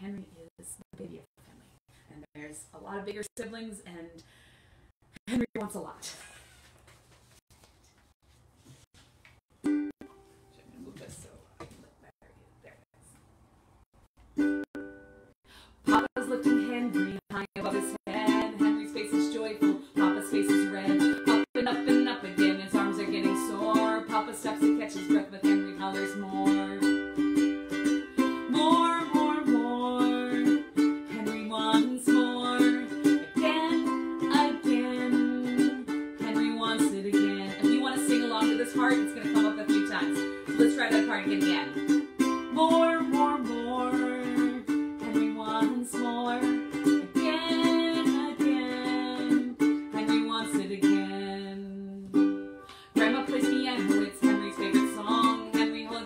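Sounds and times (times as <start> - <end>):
ukulele strumming: 9.5 - 11.0, 14.2 - 56.0.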